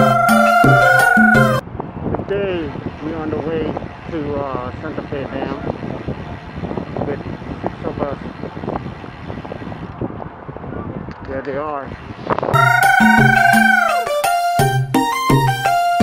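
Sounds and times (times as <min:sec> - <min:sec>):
wind noise on microphone: 0:00.0 - 0:13.6.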